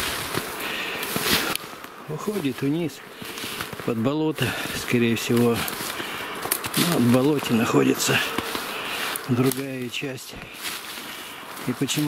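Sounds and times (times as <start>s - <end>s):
footsteps in dry grass and snow: 0.0s - 12.0s
heavy breathing: 0.6s - 1.6s, 4.4s - 4.9s, 5.5s - 6.5s, 8.0s - 9.3s, 10.3s - 11.6s.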